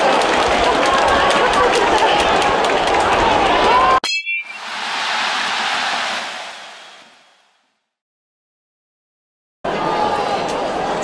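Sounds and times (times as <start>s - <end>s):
bright metallic ding: 4.0s - 4.6s.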